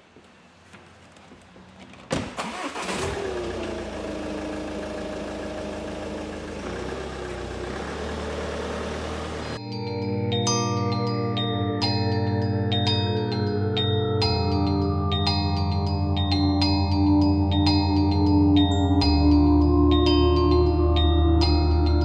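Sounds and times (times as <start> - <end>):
car engine starting and idling: 0.5 - 9.6
bell-like music: 9.4 - 22.0.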